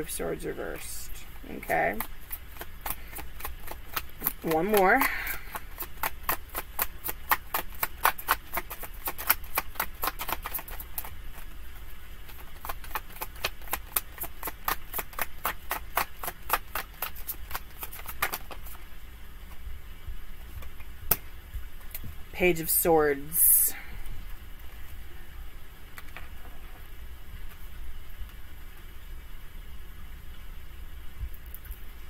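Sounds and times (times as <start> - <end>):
cards being shuffled: 1.6 - 18.8.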